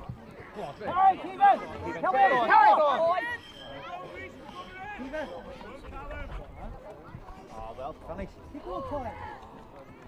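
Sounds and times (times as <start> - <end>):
faint background chatter: 0.0 - 10.0.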